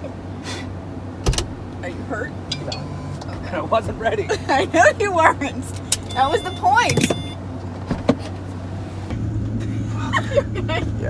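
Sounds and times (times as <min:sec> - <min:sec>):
car low hum: 0:00.0 - 0:11.0
latch clunk: 0:01.2 - 0:01.8.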